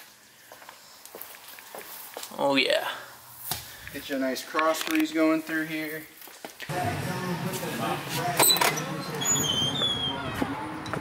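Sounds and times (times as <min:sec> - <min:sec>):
indistinct voices: 0:06.7 - 0:11.0.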